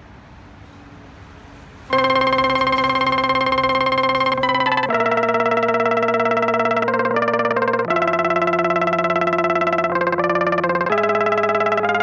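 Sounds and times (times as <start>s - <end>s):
faint street ambience: 0.0s - 12.0s
synthesizer keyboard tone: 1.9s - 12.0s.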